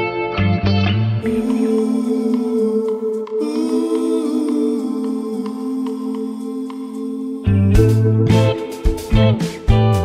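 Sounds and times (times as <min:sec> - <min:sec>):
soft sustained soundtrack music: 0:00.0 - 0:10.0.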